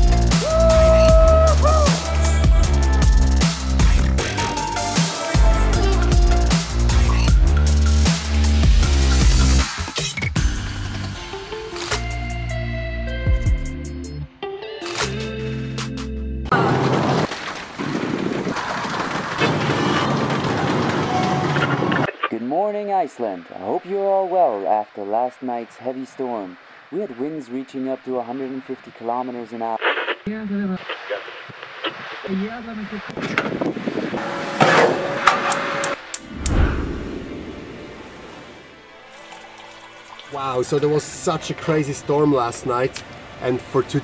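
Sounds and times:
heavy rain hitting a vehicle: 16.5s - 22.1s
strong wind: 16.6s - 22.1s, 31.9s - 38.8s
gas burner whoosh: 34.8s - 38.6s.

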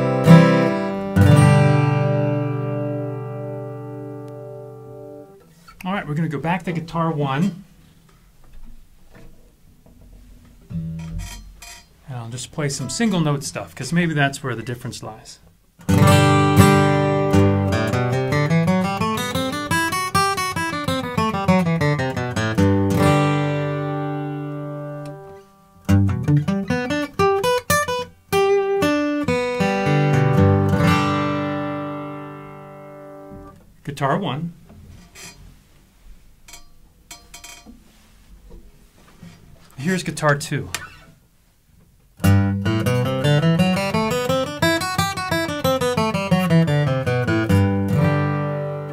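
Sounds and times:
guitars knocking on wall hangers: 10.7s - 12.0s, 36.5s - 38.7s.

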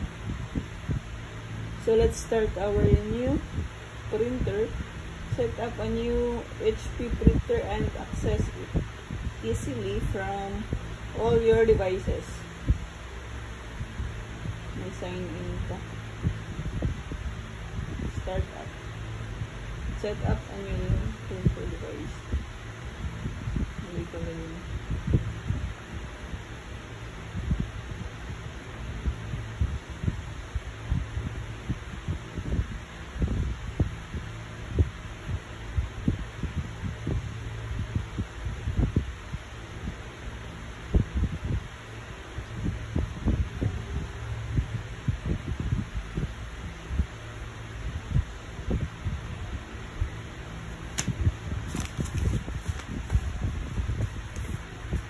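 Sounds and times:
soft low thumps: 0.0s - 26.5s, 40.8s - 55.0s
steady low hum: 0.0s - 55.0s.

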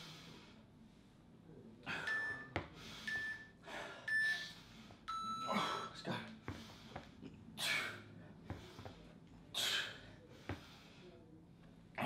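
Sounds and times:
heavy breathing: 0.0s - 0.7s, 1.8s - 11.2s
timer beeps: 1.9s - 5.8s.

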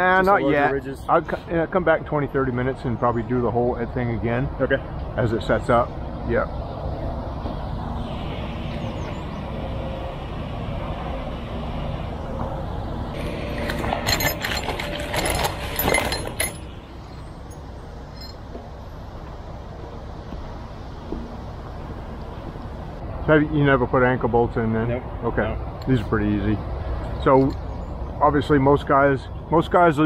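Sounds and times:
steady low rumble: 0.0s - 28.7s
metal bolts clinking in box: 13.2s - 17.6s.

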